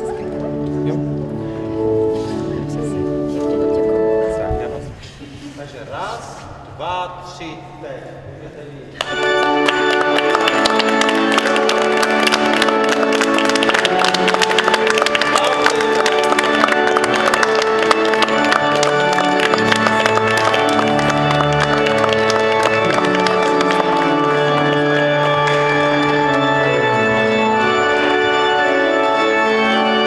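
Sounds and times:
organ playing held chords: 0.0 - 4.9, 9.0 - 30.0
people clapping: 9.0 - 30.0.

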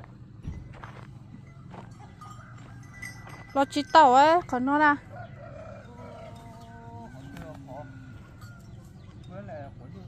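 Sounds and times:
distant rooster crowing: 1.4 - 3.6, 4.9 - 9.2.

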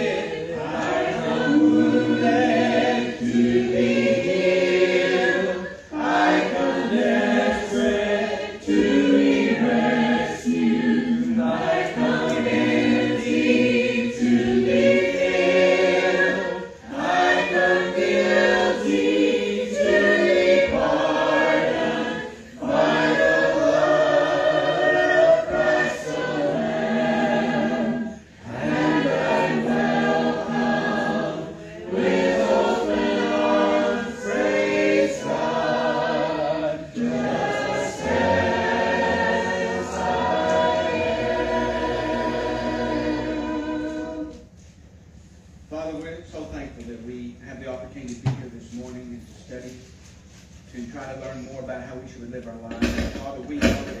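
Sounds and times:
congregation singing a hymn: 0.0 - 44.8, 50.7 - 54.0.

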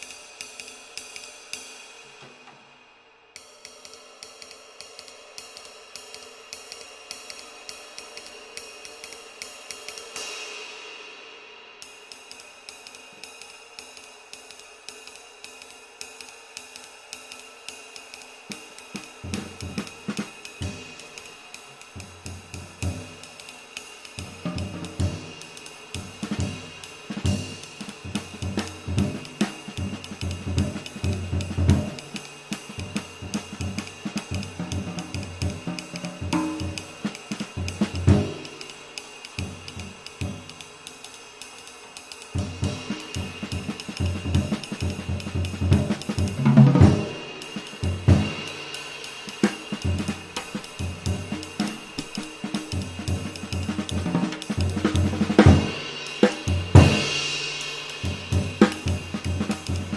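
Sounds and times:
ride cymbal played with drumstick: 0.0 - 59.9
bass drum and drum kit strokes: 18.5 - 41.0, 41.8 - 59.9.

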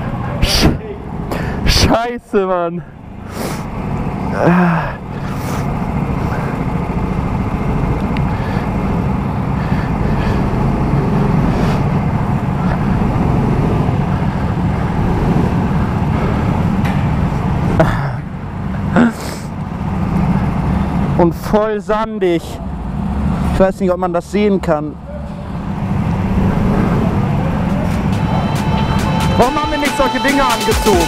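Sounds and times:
go-kart engines droning: 0.0 - 31.0.

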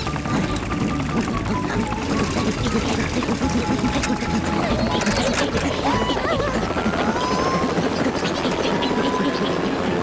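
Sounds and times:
cartoon helicopter rotor chopping: 0.0 - 10.0.

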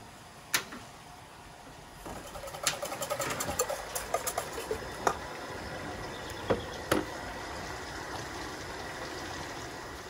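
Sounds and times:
utensils and dishes clinking: 2.3 - 4.8.

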